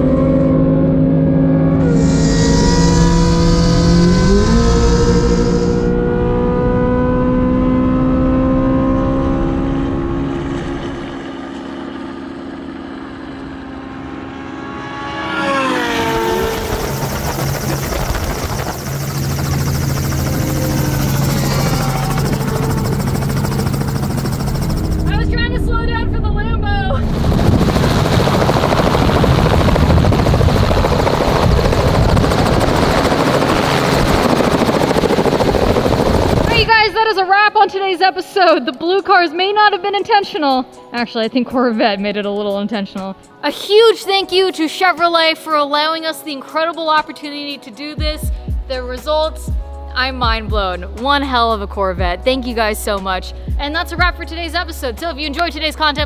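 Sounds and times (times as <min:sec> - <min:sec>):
car engines racing: 0:00.0 - 0:26.0
wind noise: 0:16.0 - 0:20.2, 0:21.0 - 0:37.0.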